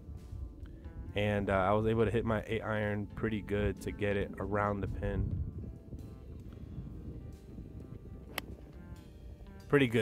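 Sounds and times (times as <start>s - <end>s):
quiet background music: 0.0s - 10.0s
golf club striking ball: 5.9s - 9.2s.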